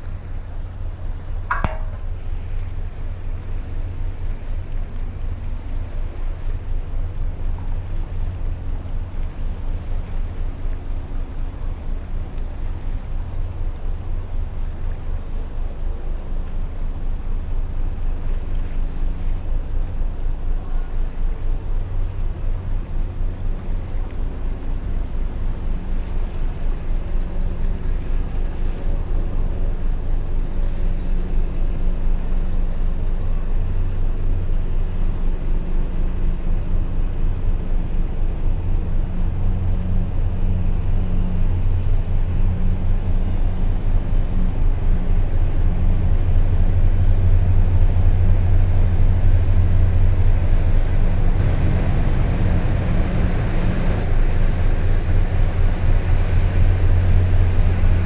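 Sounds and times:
faint steady hum: 0.0 - 58.0
ship engine rumble: 0.0 - 58.0.

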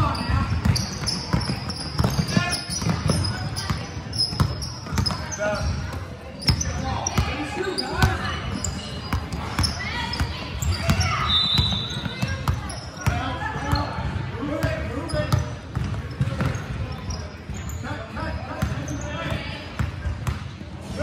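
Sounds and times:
sneaker squeaks: 0.0 - 20.4
voices in large hall: 0.0 - 21.0.

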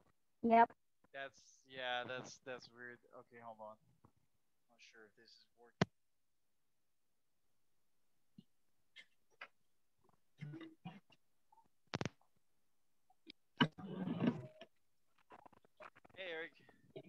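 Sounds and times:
headset microphone clicks and bumps: 11.9 - 12.2.

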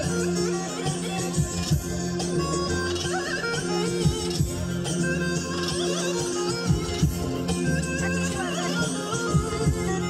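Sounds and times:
deep drum beats: 9.3 - 10.0.

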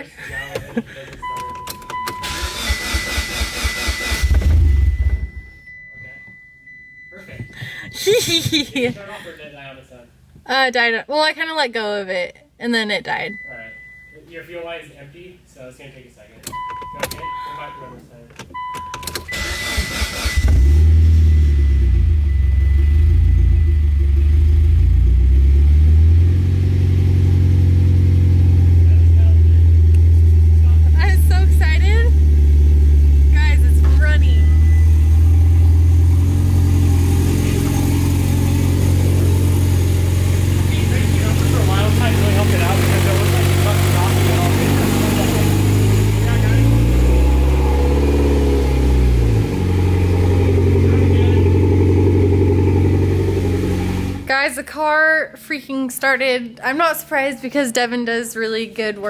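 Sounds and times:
car engine idling: 0.0 - 8.9, 16.4 - 54.6
engine cranking on starter: 0.4 - 5.4, 18.5 - 22.4, 40.0 - 54.3.

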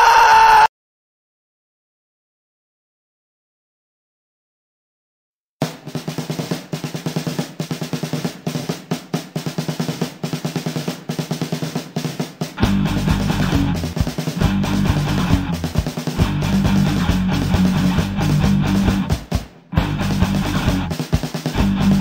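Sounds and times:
snare drum intro: 5.6 - 22.0
rock band playing: 12.6 - 22.0.

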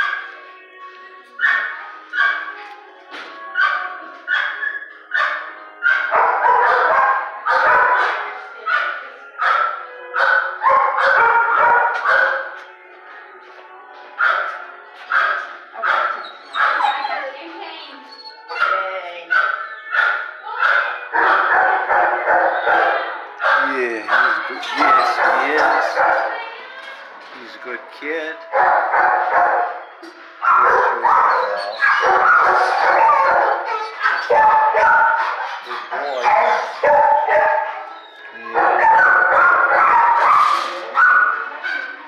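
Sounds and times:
dogs barking: 0.0 - 0.5, 1.4 - 2.6, 3.5 - 12.7, 14.2 - 17.5, 18.2 - 26.5, 28.4 - 42.0.

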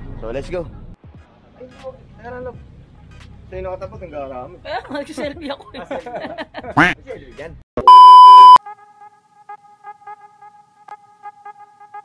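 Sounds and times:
loud electronic beep: 7.9 - 8.6.

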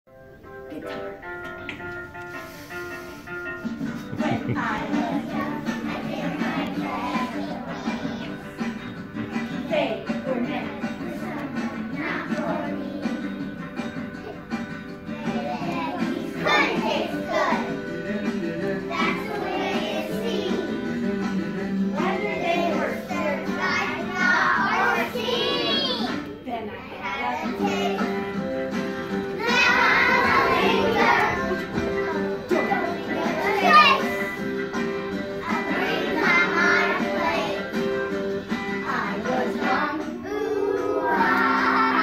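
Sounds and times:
backing music: 0.1 - 42.0
children singing and calling out: 4.0 - 42.0.

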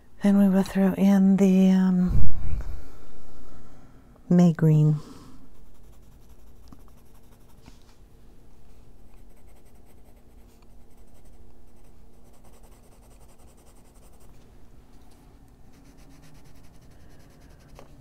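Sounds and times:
pencil scratching on paper: 5.5 - 7.7, 9.1 - 14.3, 15.7 - 18.0.

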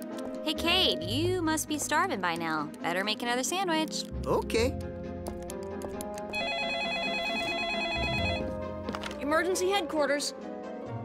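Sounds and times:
telephone ringing with warbling trill: 6.3 - 8.6.

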